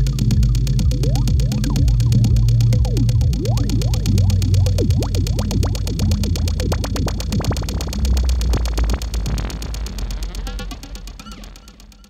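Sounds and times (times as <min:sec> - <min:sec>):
techno music: 0:00.0 - 0:12.0.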